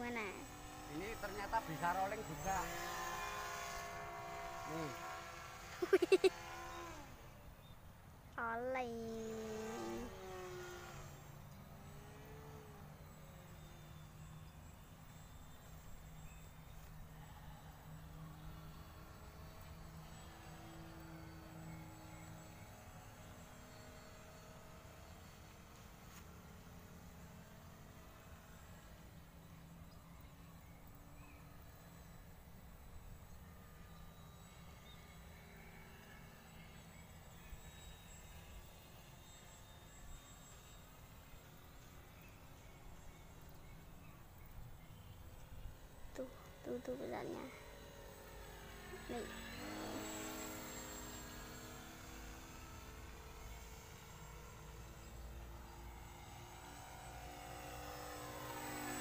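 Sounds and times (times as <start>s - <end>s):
distant motor hum: 0.0s - 59.0s
burst of laughter: 5.8s - 6.3s.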